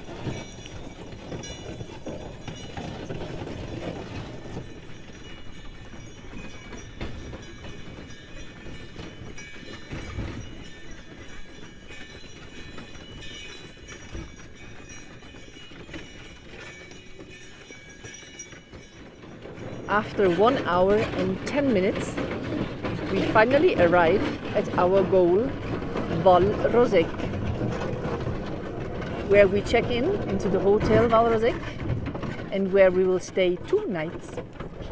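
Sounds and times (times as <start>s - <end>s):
sleigh rumbling and rattling: 0.0s - 34.9s.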